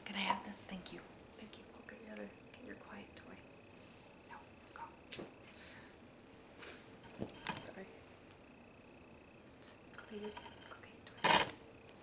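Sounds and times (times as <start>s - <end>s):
faint high whine: 0.0s - 12.0s
woman whispering: 4.3s - 5.0s, 9.6s - 11.2s.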